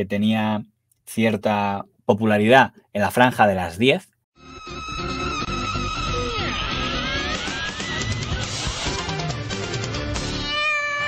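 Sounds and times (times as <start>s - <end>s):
tv theme music: 4.4s - 10.5s
cartoon cat meow: 10.2s - 11.0s.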